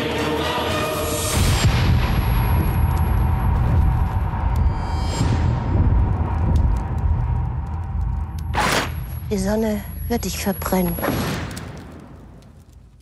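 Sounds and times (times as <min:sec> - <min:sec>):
deep rumbling drone: 0:01.4 - 0:10.6.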